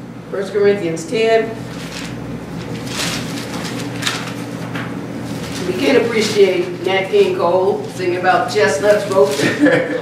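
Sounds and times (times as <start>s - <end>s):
low electrical hum: 0.0s - 10.0s
book pages turning: 1.7s - 4.7s.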